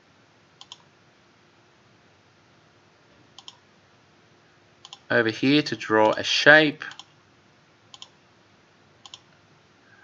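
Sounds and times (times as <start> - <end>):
faint room hiss: 0.0 - 10.0
computer mouse clicks: 0.6 - 0.9, 3.4 - 3.6, 4.8 - 5.1, 6.9 - 7.2, 7.9 - 8.2, 9.0 - 9.4.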